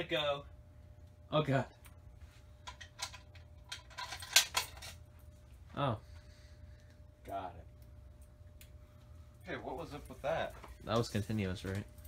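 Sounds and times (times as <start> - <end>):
metallic clicks and rattles: 2.6 - 5.0.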